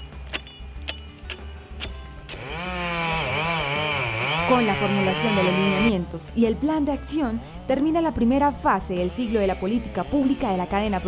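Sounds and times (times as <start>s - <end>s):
chainsaw cutting into log: 1.2s - 5.9s, 9.2s - 11.0s.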